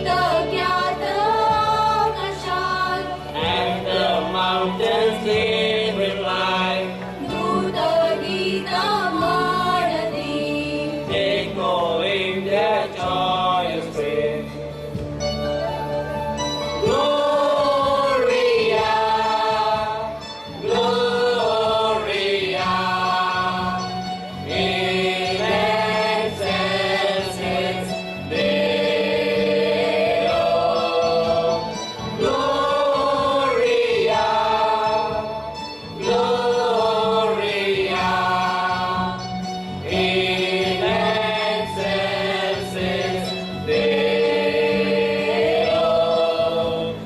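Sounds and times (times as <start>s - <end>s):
choir singing in harmony: 0.0s - 14.9s, 15.6s - 47.0s.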